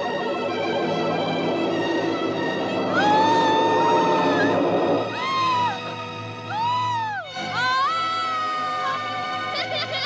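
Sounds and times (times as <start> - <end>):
background music: 0.0 - 10.0
woman screaming: 2.9 - 9.6.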